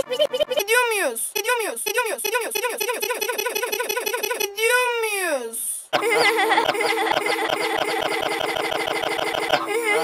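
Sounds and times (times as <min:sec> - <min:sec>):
girl laughing with stutter effect: 0:00.0 - 0:00.7, 0:02.9 - 0:04.6, 0:06.0 - 0:10.0.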